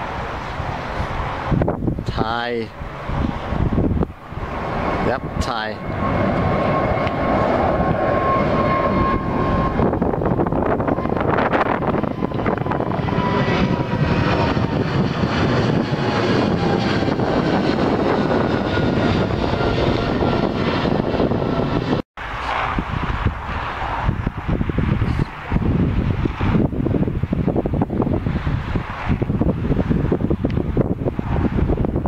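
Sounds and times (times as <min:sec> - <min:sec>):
jet plane roaring overhead: 0:00.0 - 0:32.0
whining engine tone: 0:02.7 - 0:27.2.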